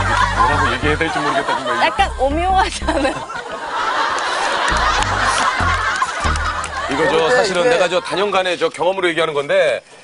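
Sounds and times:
low bass notes: 0:00.0 - 0:01.2, 0:02.0 - 0:03.2, 0:04.7 - 0:07.1
background music: 0:00.0 - 0:03.3, 0:04.7 - 0:07.8
people laughing: 0:00.0 - 0:08.7.

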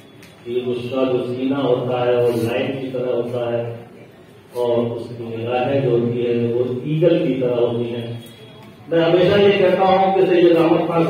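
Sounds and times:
man speaking into a microphone: 0:00.4 - 0:11.0.

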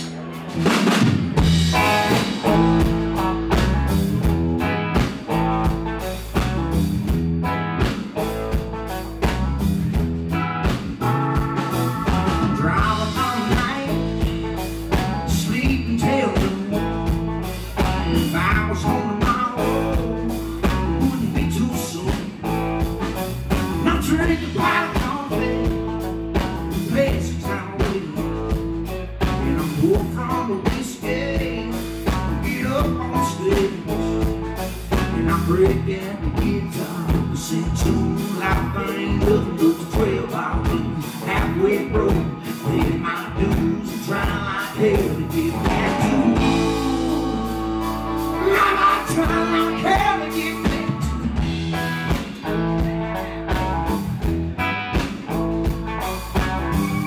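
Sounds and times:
bass guitar: 0:00.0 - 0:57.0
drum kit: 0:00.0 - 0:57.0
electric guitars: 0:00.0 - 0:57.0.

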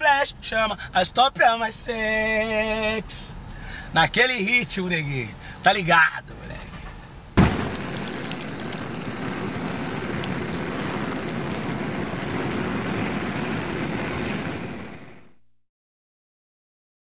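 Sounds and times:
flames burning and crackling: 0:06.8 - 0:15.4.

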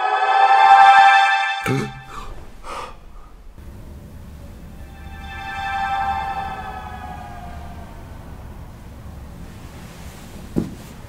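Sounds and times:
man gasping: 0:01.6 - 0:03.5.

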